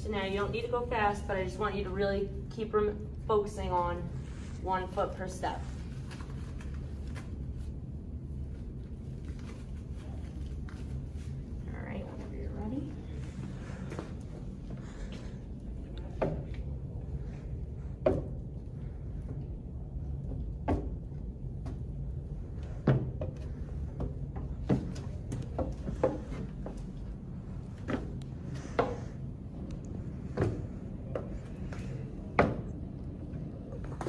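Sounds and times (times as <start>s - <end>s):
footsteps on wooden stairs: 22.8s - 27.1s, 27.7s - 29.2s.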